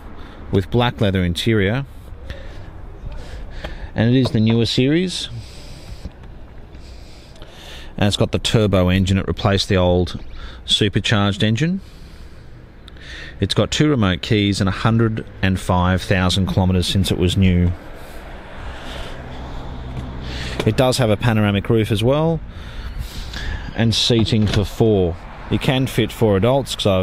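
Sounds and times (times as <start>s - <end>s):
low steady background noise: 0.0s - 27.0s
outdoor hum: 0.0s - 27.0s
street traffic: 0.0s - 27.0s.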